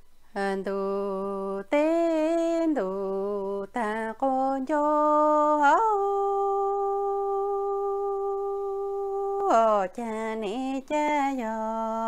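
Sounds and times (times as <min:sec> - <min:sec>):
woman singing: 0:00.3 - 0:12.0.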